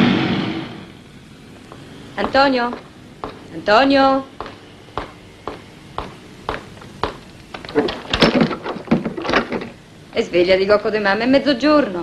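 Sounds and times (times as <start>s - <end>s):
wooden shutters opening: 4.4s - 9.9s.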